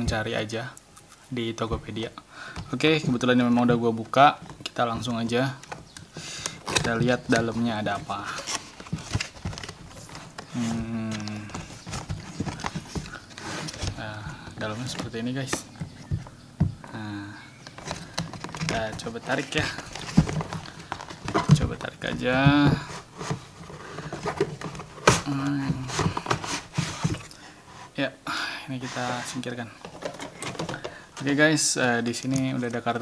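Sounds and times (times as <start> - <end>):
cardboard box being opened: 6.6 - 16.2, 17.7 - 27.3.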